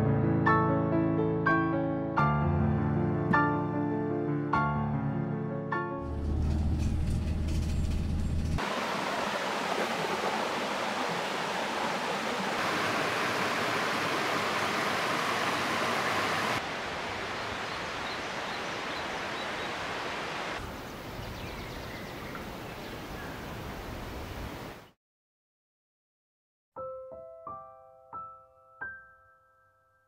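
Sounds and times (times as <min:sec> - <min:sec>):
water rushing down cascade: 0:08.6 - 0:21.1.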